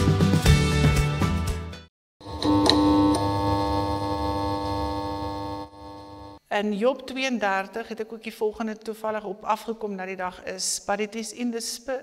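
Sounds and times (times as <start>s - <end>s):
held synthesizer chord: 2.2s - 6.4s.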